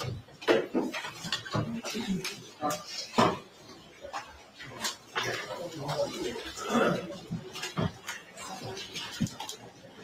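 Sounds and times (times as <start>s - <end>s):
faint murmured voices: 0.0s - 10.0s
people moving about: 0.0s - 10.0s.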